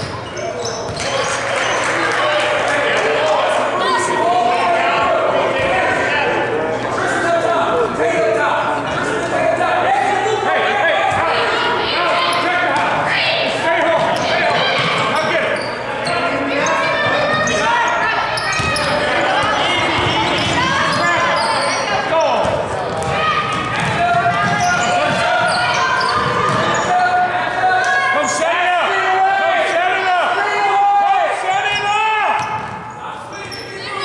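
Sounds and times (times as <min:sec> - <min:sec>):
echoing voices of crowd: 0:00.0 - 0:34.0.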